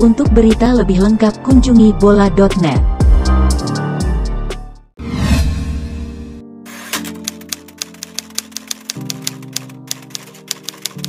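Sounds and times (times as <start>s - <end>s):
background music chords: 0.0s - 11.0s
typewriter key clicks: 6.8s - 11.0s.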